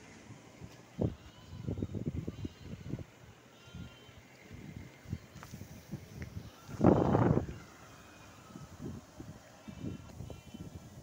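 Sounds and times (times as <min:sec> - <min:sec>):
faint outdoor ambience: 0:00.0 - 0:11.0.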